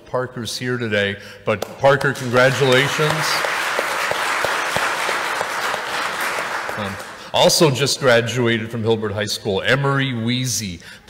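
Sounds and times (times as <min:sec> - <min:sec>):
crowd applauding: 0:01.6 - 0:07.7.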